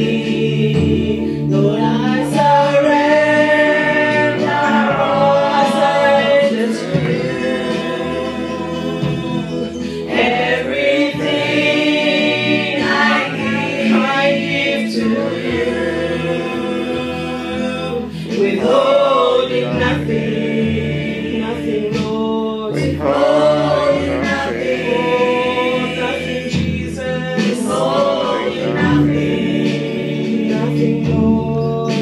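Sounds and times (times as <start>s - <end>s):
group singing praise song: 0.0s - 32.0s.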